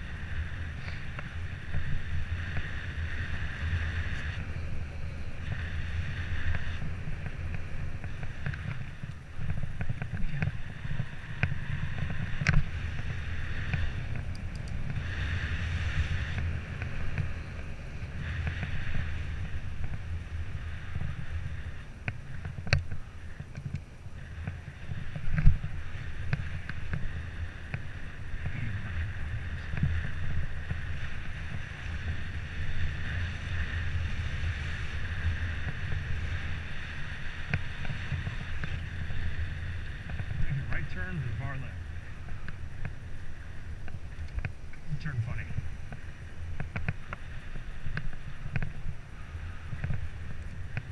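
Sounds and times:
road rumble: 0.0s - 50.9s
wind buffeting microphone: 0.0s - 50.9s.

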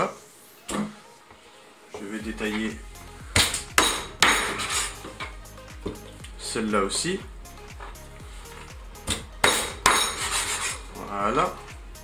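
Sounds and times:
background music with steady beat: 0.0s - 12.0s.

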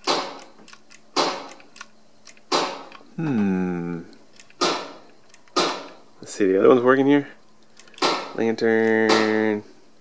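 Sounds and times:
light gun shots cracking: 8.0s - 8.4s.

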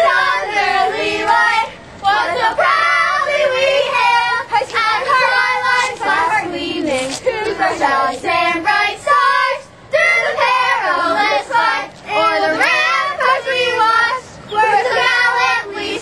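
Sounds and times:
girls singing together: 0.0s - 16.0s.

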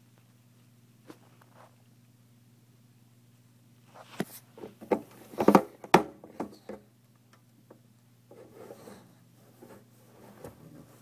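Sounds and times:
steady low hum: 0.0s - 11.0s
faint rubbing: 8.3s - 11.0s.

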